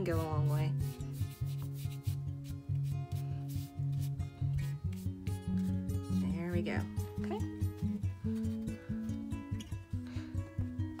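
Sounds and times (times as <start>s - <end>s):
paintbrush scrubbing on canvas: 0.0s - 8.6s.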